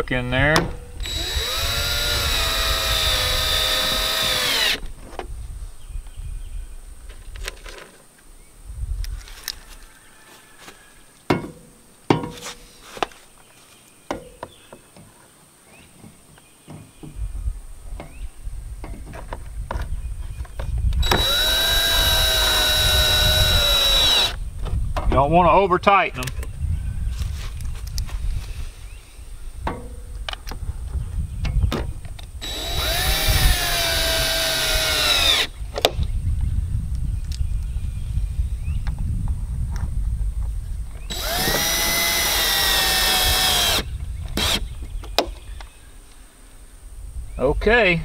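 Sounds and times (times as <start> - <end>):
cordless drill motor whine: 1.0 - 4.9, 21.0 - 24.4, 32.4 - 35.6, 41.0 - 44.7.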